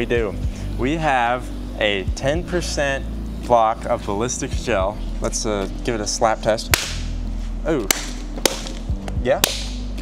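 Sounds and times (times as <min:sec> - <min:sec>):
hands slapping gel block: 0:07.9 - 0:08.8, 0:09.4 - 0:09.8.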